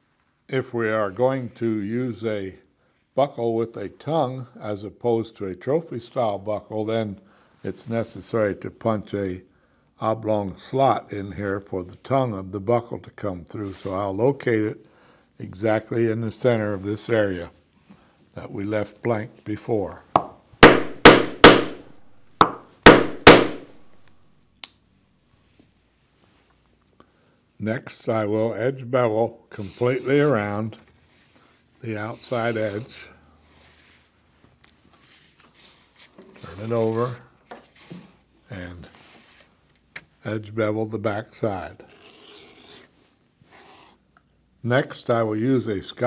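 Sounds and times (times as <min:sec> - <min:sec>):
mallet striking leather punch: 0:20.2 - 0:23.8
edge beveler scraping leather: 0:29.5 - 0:30.4, 0:41.8 - 0:44.0.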